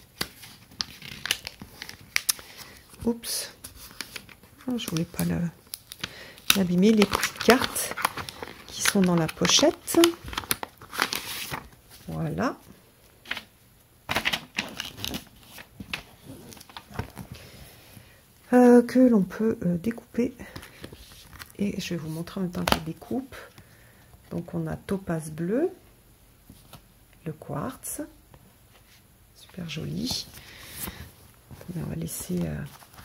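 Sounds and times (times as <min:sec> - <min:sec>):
plastic sleeve crinkling: 0:00.0 - 0:03.0, 0:03.6 - 0:12.2
paper cards rustling and tapping: 0:03.6 - 0:11.8, 0:14.1 - 0:17.4.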